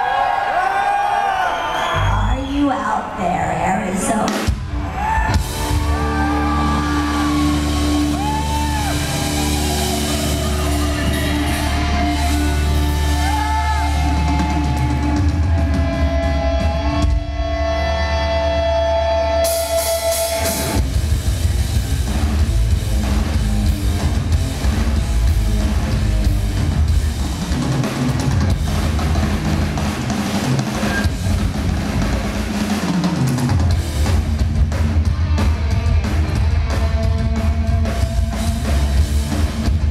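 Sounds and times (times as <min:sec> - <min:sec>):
heavy metal band playing: 0:02.8 - 0:39.9
bending guitar notes: 0:05.3 - 0:21.0.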